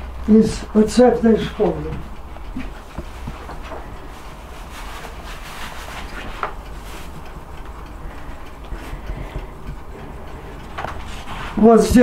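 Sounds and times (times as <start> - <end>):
steady low rumble: 0.0 - 11.6.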